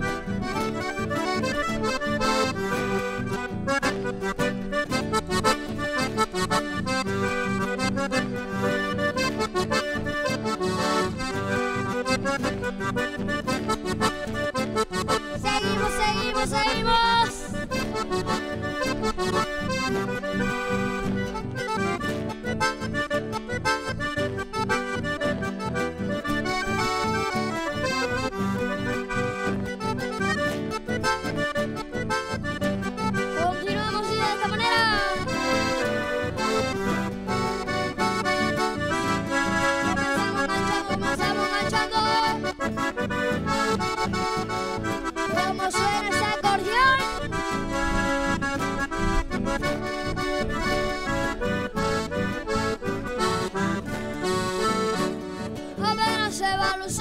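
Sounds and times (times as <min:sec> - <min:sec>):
acoustic guitar accompaniment: 0:00.0 - 0:57.0
button accordion melody: 0:00.0 - 0:57.0.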